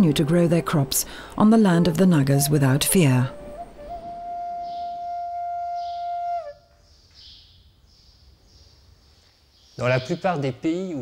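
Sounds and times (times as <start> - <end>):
wind instrument note bending down: 2.2 - 6.7.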